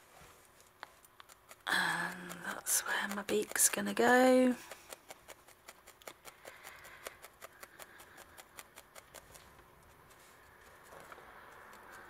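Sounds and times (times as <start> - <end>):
felting needle poking wool: 0.6 - 12.0.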